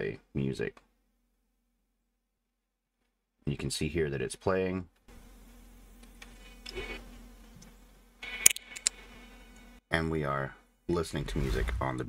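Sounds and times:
faint buzzing hum: 0.0s - 12.0s.

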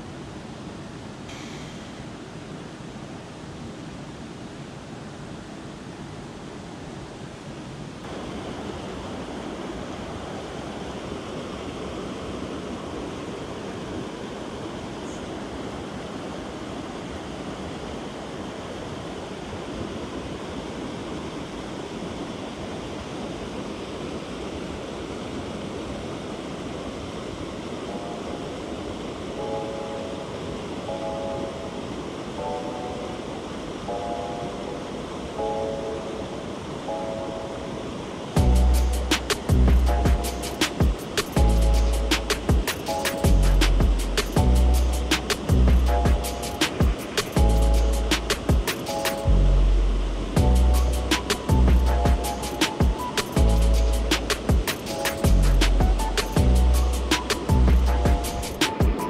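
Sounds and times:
mountain stream rushing: 0.0s - 59.0s.

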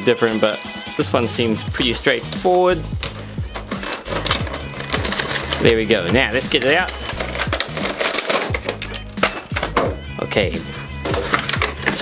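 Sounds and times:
background music: 0.0s - 12.0s
plastic packaging crackling: 2.5s - 10.0s, 11.0s - 12.0s.

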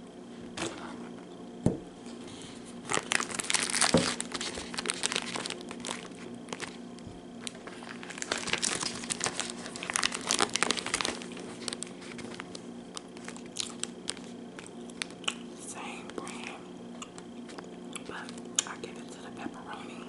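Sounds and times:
plastic wrappers crinkling: 2.8s - 15.6s.

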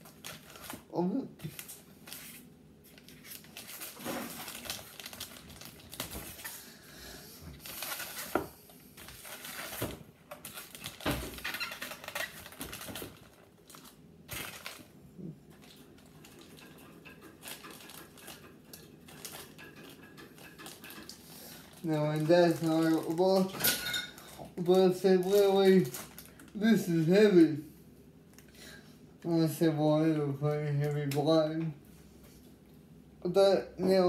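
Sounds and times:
hands handling parts and packaging: 7.6s - 14.9s.

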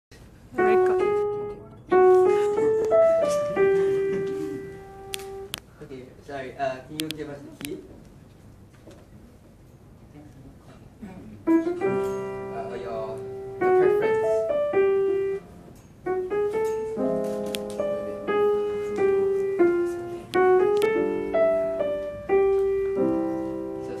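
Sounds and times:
grand piano playing: 0.5s - 5.6s, 11.5s - 24.0s.

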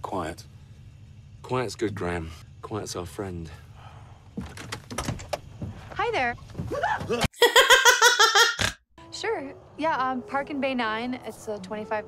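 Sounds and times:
person laughing: 6.8s - 8.8s.

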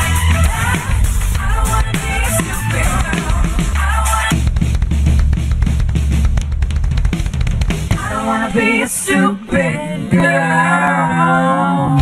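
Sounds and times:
rock drum kit: 0.0s - 8.2s
bass line: 0.0s - 12.0s.

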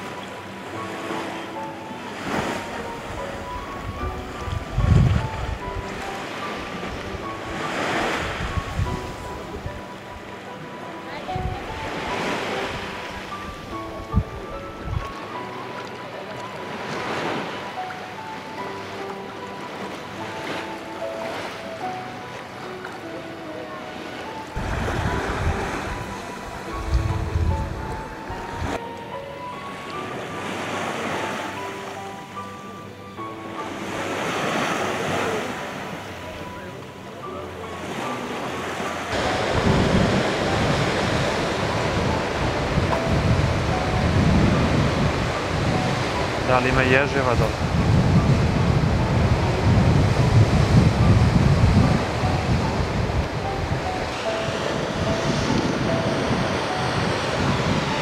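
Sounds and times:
sea waves washing in: 0.0s - 58.0s
soft background music: 0.0s - 58.0s
wind buffeting microphone: 3.0s - 6.0s, 8.2s - 9.8s, 24.6s - 28.8s, 39.2s - 46.4s, 47.3s - 58.0s.

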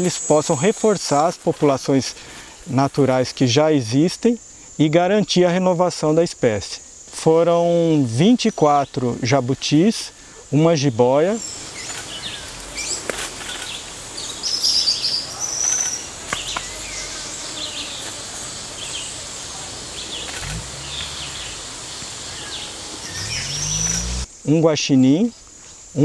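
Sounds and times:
high insect drone: 0.0s - 26.0s
birds chirping and trilling: 11.0s - 24.3s.

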